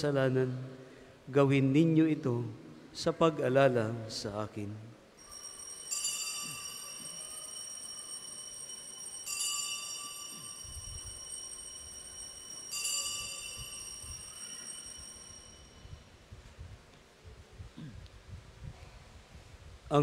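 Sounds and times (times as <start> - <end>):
altar bells ringing: 5.2 - 16.1.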